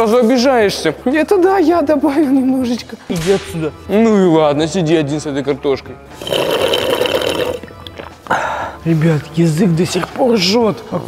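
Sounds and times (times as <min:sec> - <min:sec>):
slurping through a straw: 0:06.2 - 0:07.7.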